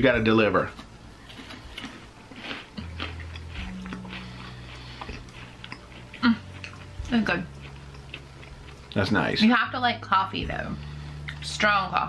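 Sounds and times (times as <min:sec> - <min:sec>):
chewing chocolate bars: 0:00.7 - 0:09.3.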